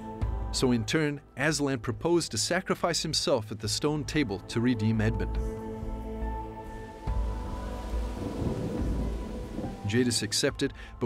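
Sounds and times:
background music sustained tones: 0.0s - 11.0s
rain hiss: 6.8s - 10.5s
thunder rumble: 7.1s - 10.4s.

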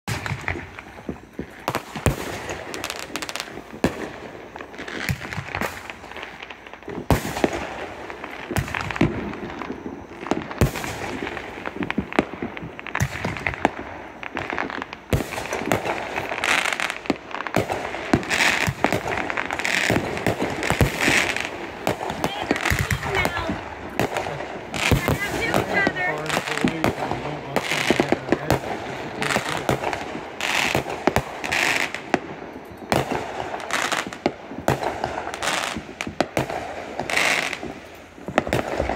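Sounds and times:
fireworks bangs: 0.0s - 38.9s
fireworks crackling: 0.0s - 38.9s.

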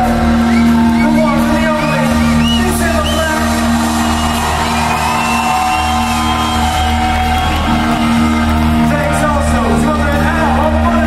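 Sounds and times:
held keyboard chords: 0.0s - 11.0s
audience shouting and whooping: 0.4s - 9.1s.

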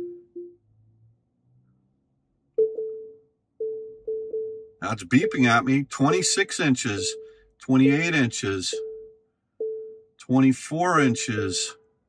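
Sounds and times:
low short beeps: 2.6s - 5.8s, 6.9s - 8.0s, 8.7s - 10.1s
higher proximity beeps: 2.6s - 10.4s, 11.0s - 11.8s.

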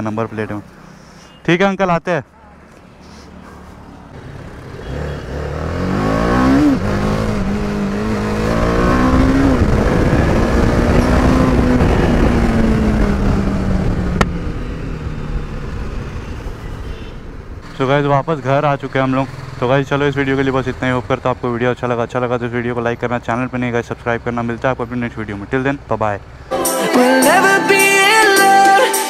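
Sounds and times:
motorcycle engine accelerating: 4.1s - 16.9s.

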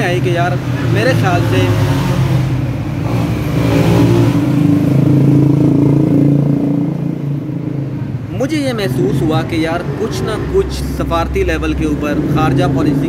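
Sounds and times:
engine revving: 0.0s - 13.0s
engines in street traffic: 0.0s - 13.0s.

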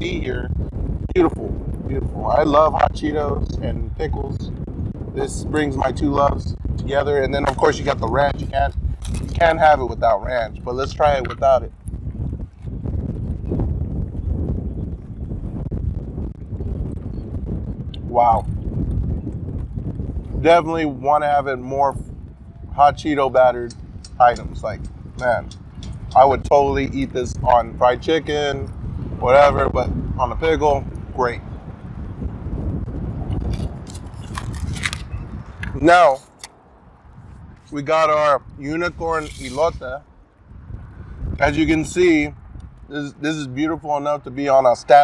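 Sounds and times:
wind buffeting microphone: 0.0s - 45.0s
short crackles: 33.4s - 36.6s.

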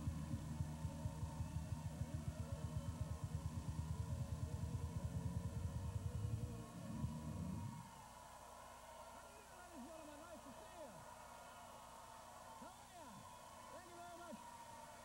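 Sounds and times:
low throbbing hum: 0.0s - 7.8s.

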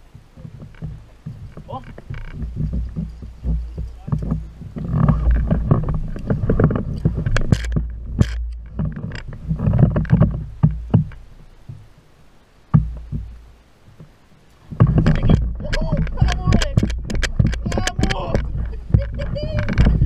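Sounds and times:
knocks against kayak hull: 12.7s - 14.1s, 14.7s - 20.0s.

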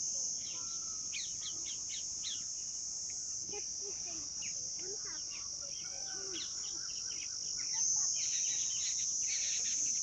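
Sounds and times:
cicadas droning: 0.0s - 10.0s
small bird chirping: 0.4s - 3.3s, 4.4s - 10.0s.

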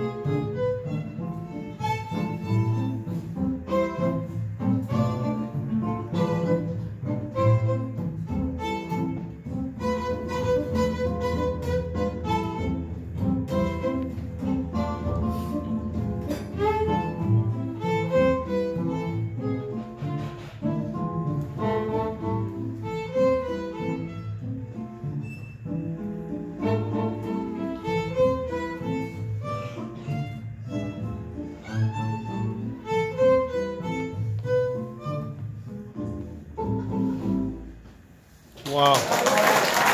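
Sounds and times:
bowed violin: 0.0s - 37.7s
upright double bass: 0.0s - 38.5s
acoustic guitar: 1.6s - 38.0s.

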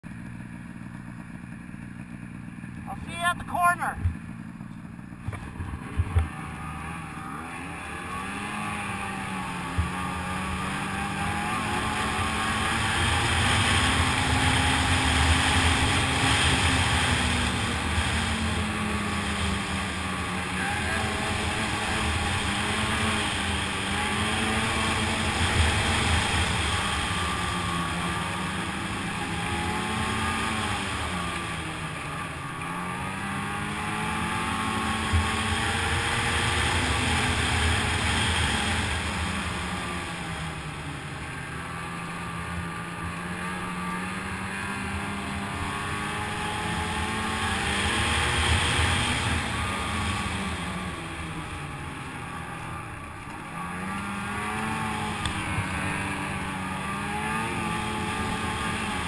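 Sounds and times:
snowmobile engine running: 0.0s - 59.0s.

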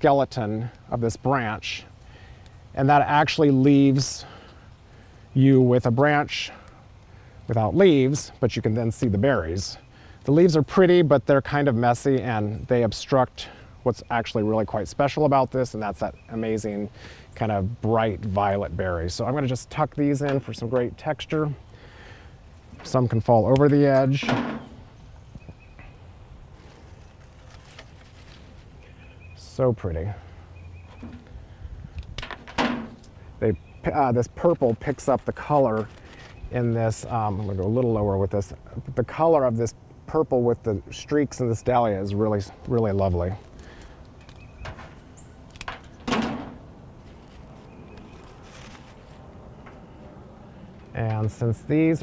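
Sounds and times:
quiet outdoor background: 0.0s - 52.0s
stems and leaves rustling: 0.0s - 52.0s.

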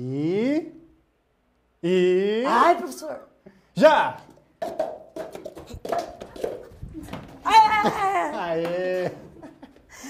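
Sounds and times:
plastic cups set down on floor: 4.2s - 7.4s
hurried footsteps: 4.2s - 9.3s.

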